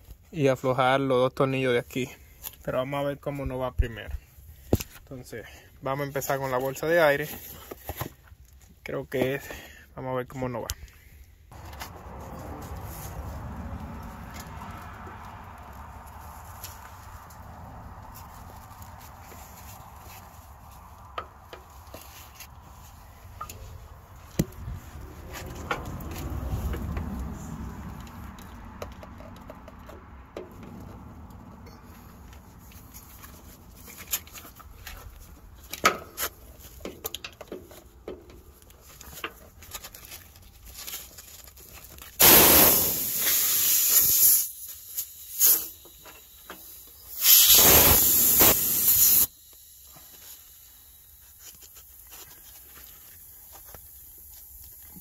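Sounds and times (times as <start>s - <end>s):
compressed air hissing: 42.2s - 51.2s.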